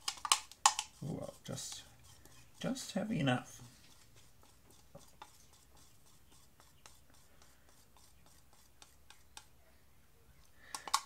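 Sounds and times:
stick scraping plastic cup: 0:00.0 - 0:09.5.

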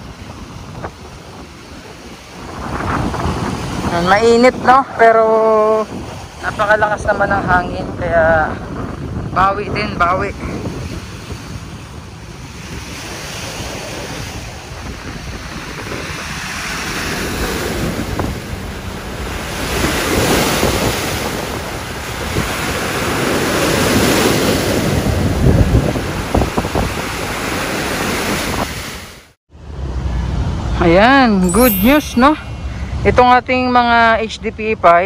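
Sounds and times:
wind buffeting microphone: 0:00.0 - 0:29.1
waves breaking on seawall: 0:08.1 - 0:29.3.

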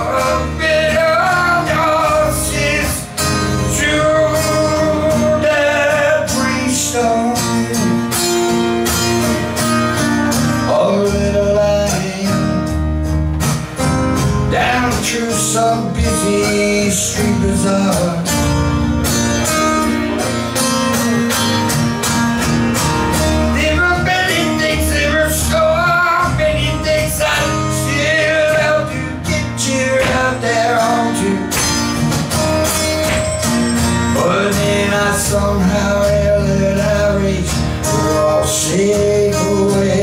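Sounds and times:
man singing: 0:00.0 - 0:08.3, 0:10.5 - 0:12.8, 0:14.4 - 0:18.8, 0:23.4 - 0:32.0, 0:34.0 - 0:40.0
acoustic guitar strumming: 0:00.0 - 0:40.0.

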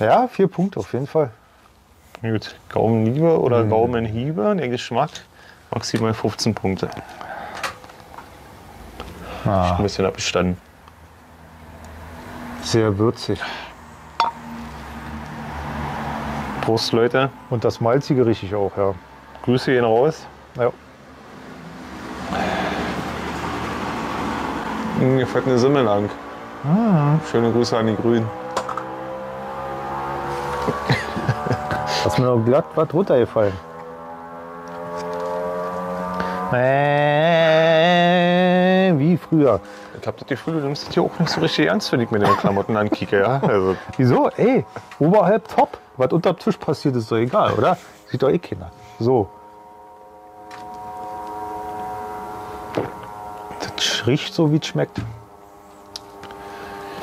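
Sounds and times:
passing vehicle rushing: 0:06.7 - 0:57.0
steady motor hum: 0:37.1 - 0:57.0.

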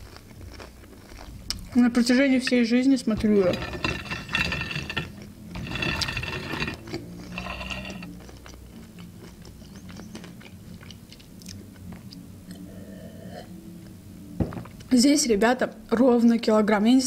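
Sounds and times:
crunchy food being chewed: 0:00.0 - 0:01.8, 0:06.8 - 0:12.7.

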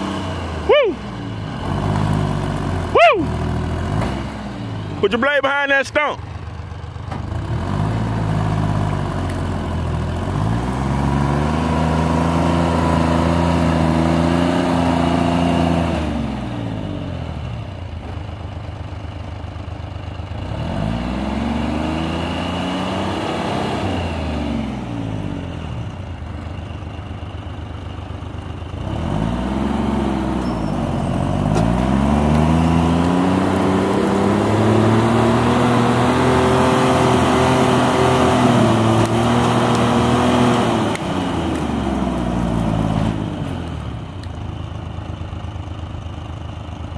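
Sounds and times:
diesel engine revving: 0:00.0 - 0:46.9.

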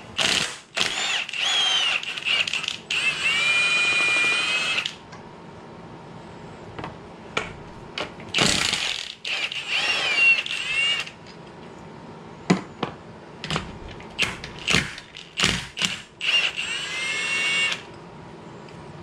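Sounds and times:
electric ratchet motor whining: 0:00.2 - 0:05.0, 0:08.4 - 0:11.2, 0:14.2 - 0:17.9.

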